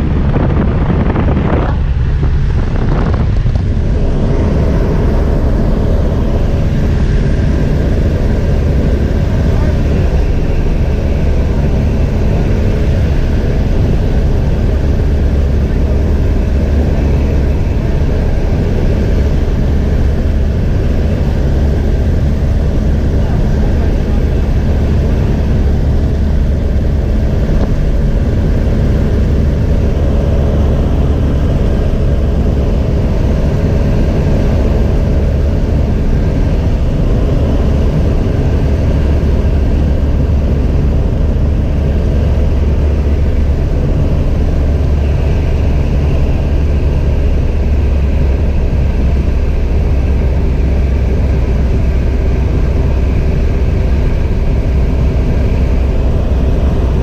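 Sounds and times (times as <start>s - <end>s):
light aircraft engine drone: 0.0s - 57.0s.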